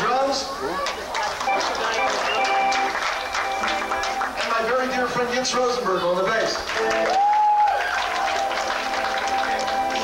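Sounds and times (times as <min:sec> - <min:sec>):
live rock band playing: 0:01.5 - 0:05.3, 0:06.6 - 0:10.0.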